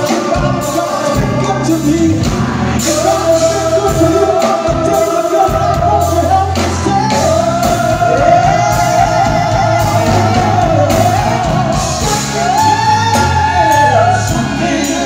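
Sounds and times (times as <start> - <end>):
lead singer holding long notes: 0.0 - 15.0
live soul band playing: 0.0 - 15.0.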